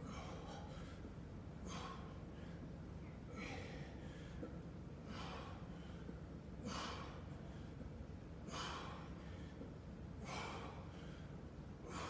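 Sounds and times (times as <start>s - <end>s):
man breathing heavily: 0.0s - 12.0s
steady low hum: 0.0s - 12.0s.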